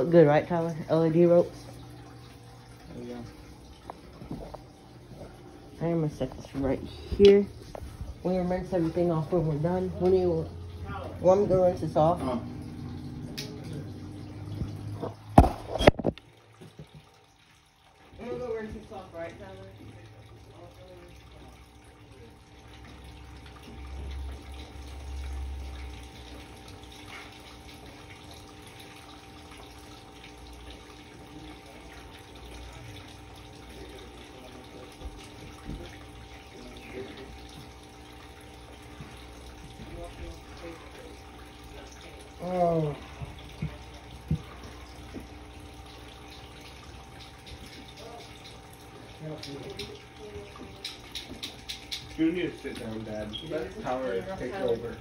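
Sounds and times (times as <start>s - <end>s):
tap water running into sink: 0.0s - 55.0s.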